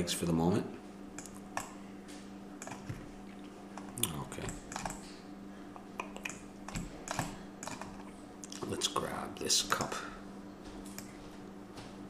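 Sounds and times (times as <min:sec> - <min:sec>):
faint steady hum: 0:00.0 - 0:12.0
keyboard and mouse clicks: 0:01.2 - 0:01.7, 0:02.6 - 0:03.0, 0:03.8 - 0:05.0, 0:06.0 - 0:08.1.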